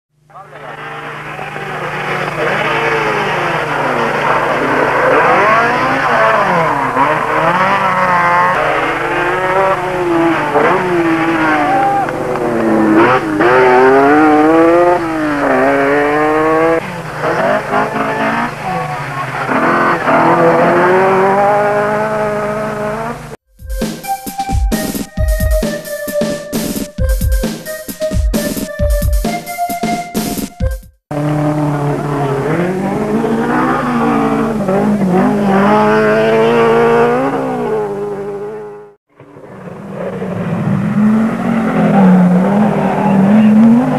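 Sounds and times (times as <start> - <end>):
rally car engines revving: 0.2 - 23.4, 31.1 - 43.9.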